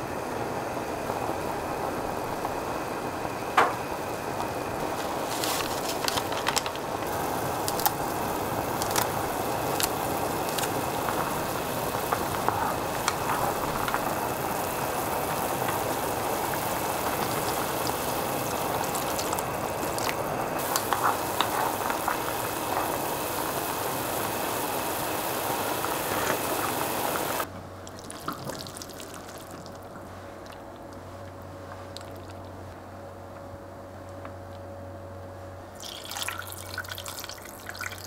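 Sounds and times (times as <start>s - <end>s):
soup broth boiling and bubbling: 0.0s - 32.7s, 35.7s - 38.0s.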